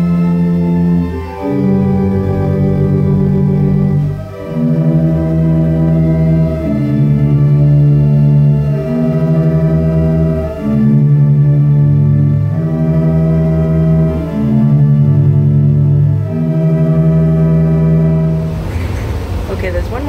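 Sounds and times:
pipe organ chords: 0.0 - 19.9.

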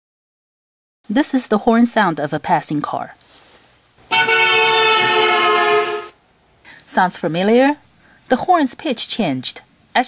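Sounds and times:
car horn blast: 4.1 - 6.2.

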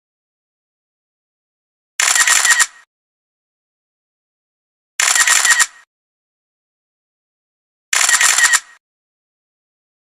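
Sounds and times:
camera shutter clicks: 2.0 - 2.9, 5.0 - 5.9, 7.9 - 8.8.

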